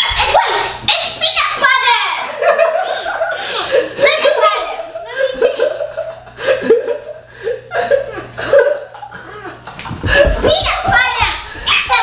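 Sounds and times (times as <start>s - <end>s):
children shouting and squealing: 0.0s - 5.2s.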